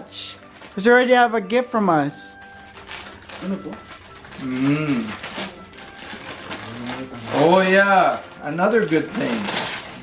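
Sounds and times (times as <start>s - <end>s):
wrapping paper crinkling and tearing: 0.1s - 1.4s, 2.3s - 10.0s.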